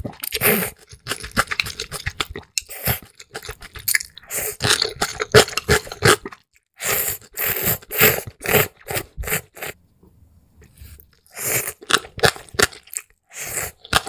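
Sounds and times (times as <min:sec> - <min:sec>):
slurping noodles: 0:00.0 - 0:09.8, 0:10.6 - 0:14.0
wet chewing: 0:00.0 - 0:09.8, 0:10.6 - 0:14.0.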